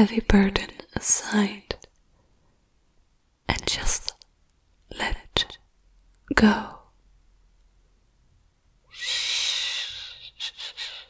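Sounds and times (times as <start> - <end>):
woman exhaling breathily: 8.9 - 11.0.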